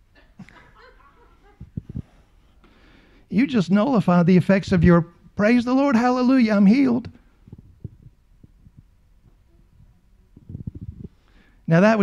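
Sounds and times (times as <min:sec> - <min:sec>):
steady low hum: 0:06.8 - 0:11.7
faint low thumps: 0:07.2 - 0:11.3.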